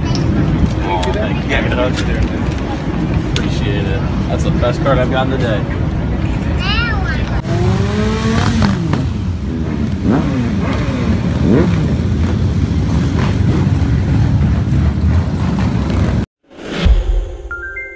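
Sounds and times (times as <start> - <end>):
crowd voices: 0.0 - 7.4
motorcycle engines revving past: 7.4 - 16.3.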